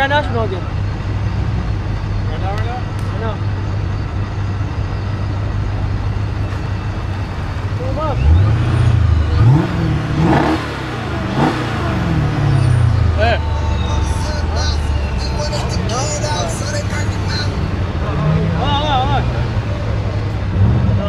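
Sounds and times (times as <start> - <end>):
car engines revving: 0.0 - 21.0
faint crowd voices: 0.0 - 21.0.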